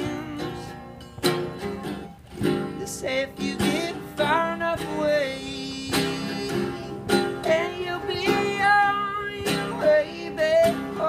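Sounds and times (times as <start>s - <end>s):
person singing: 0.0s - 0.9s, 2.7s - 11.0s
guitar strummed hard: 0.0s - 11.0s.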